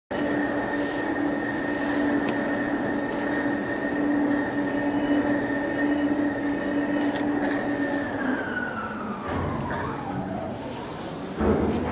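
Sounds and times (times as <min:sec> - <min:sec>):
machinery whine: 0:00.1 - 0:11.6
ship engines droning: 0:00.1 - 0:11.9.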